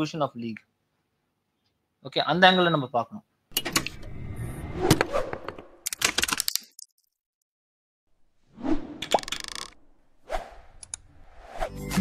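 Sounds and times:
whoosh: 0:10.2 - 0:11.8.

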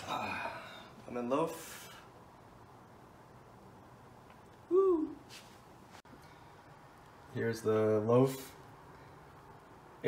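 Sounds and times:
man humming: 0:04.7 - 0:05.2.

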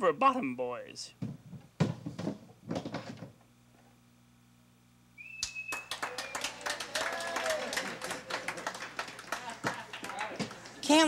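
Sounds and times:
knocks and clatter: 0:01.2 - 0:03.4.

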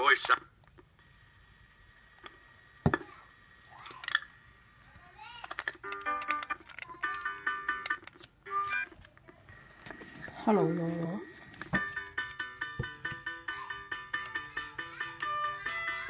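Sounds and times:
electronic toy jingle: 0:11.8 - 0:16.0.

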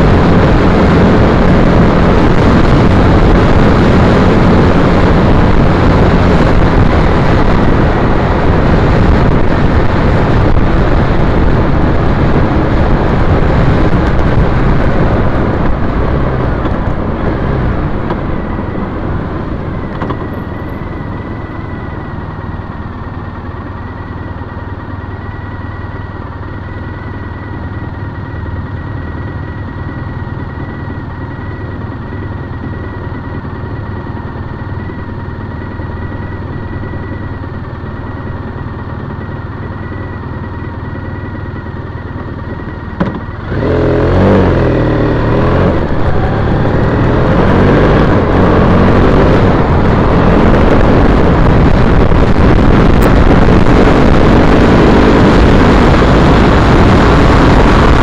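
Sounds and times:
motorcycle engine: 0:00.0 - 0:58.0.

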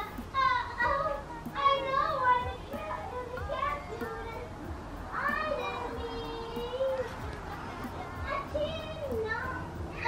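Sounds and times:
background music: 0:00.0 - 0:10.0
child chattering: 0:00.0 - 0:10.0.

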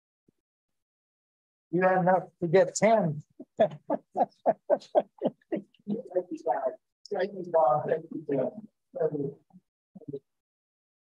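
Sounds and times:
person laughing: 0:03.4 - 0:06.1.

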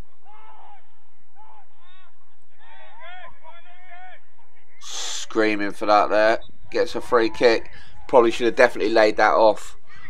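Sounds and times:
distant players shouting: 0:00.0 - 0:10.0.

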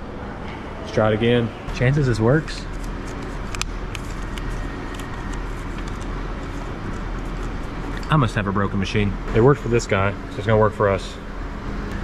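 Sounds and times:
metro station hum: 0:00.0 - 0:12.0.

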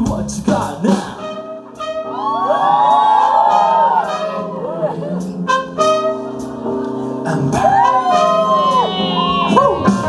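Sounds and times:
live band with horns: 0:00.0 - 0:10.0
audience cheering and whooping: 0:01.7 - 0:05.2, 0:07.3 - 0:10.0.

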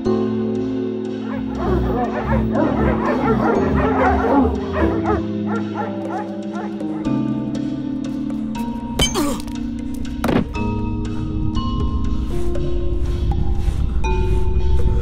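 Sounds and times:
background music: 0:00.0 - 0:15.0
dogs barking and yipping: 0:01.2 - 0:07.4.

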